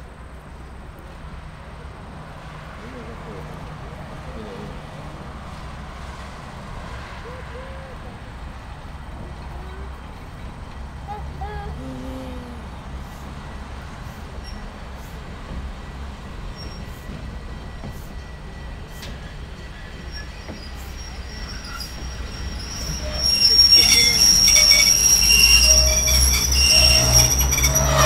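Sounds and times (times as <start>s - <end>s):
train approaching with low rumble: 0.0s - 28.0s.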